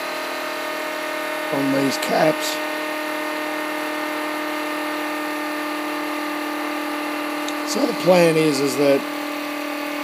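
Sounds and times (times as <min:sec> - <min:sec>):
motor spinning with steady whine: 0:00.0 - 0:10.0.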